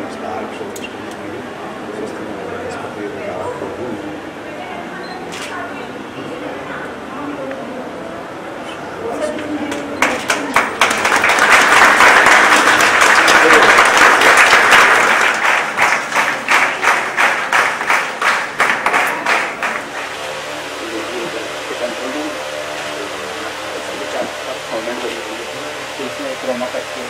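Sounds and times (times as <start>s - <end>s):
people applauding: 9.6s - 25.3s.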